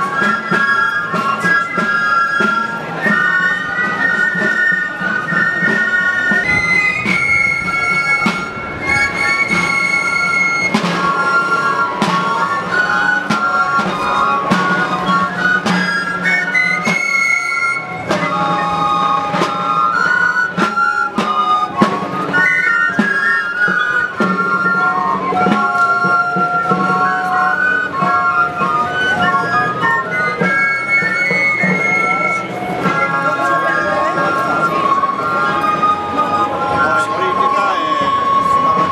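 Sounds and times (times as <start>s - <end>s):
clarinets playing a folk tune: 0.0s - 38.9s
wind instruments holding long notes: 0.0s - 38.9s.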